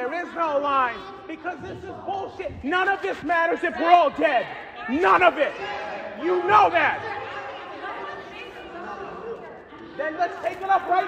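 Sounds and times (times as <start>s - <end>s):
audience chatter: 0.0s - 11.0s
people shouting questions: 0.0s - 11.0s.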